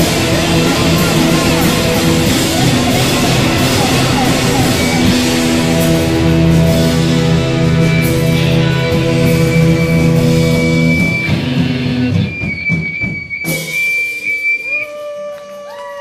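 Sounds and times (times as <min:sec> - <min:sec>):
cymbal crash: 0:00.0 - 0:12.2
guitar notes bending down: 0:00.0 - 0:14.4
rock band playing: 0:00.0 - 0:15.0
held high tone: 0:00.0 - 0:15.4.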